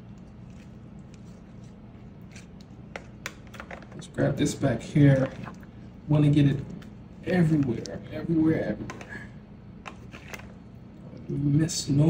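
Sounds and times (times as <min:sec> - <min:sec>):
spatula squishing and scraping mixture: 0:00.0 - 0:11.2.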